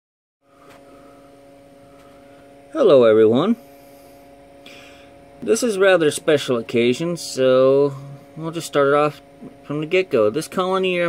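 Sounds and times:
steady electrical hum: 0.4s - 11.0s.

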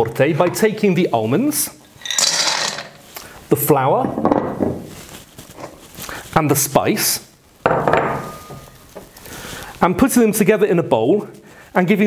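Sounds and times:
soft rustling: 4.8s - 7.6s, 8.2s - 12.0s.

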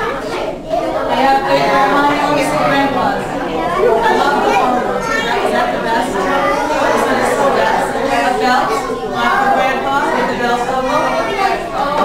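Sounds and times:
crowd chatter in a large room: 0.0s - 12.0s.

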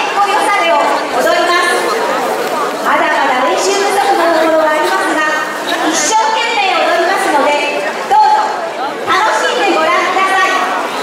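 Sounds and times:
woman talking over loudspeakers: 0.0s - 1.9s, 2.8s - 10.9s.

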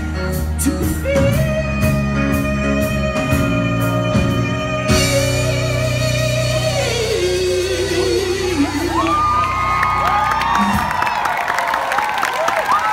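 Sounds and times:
person singing: 0.0s - 9.6s
crowd cheering and whooping: 8.0s - 12.9s.

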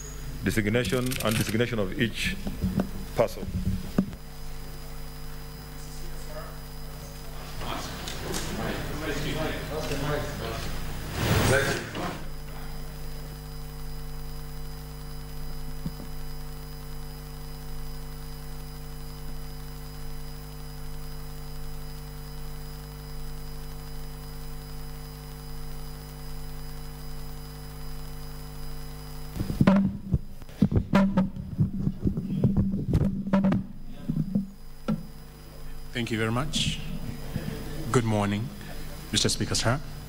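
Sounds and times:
low electrical mains hum: 0.0s - 40.0s
knocks: 29.6s - 35.1s.

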